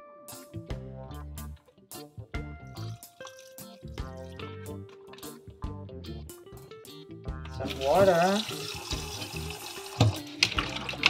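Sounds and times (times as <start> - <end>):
water sloshing and splashing: 2.8 - 5.6, 7.5 - 11.0.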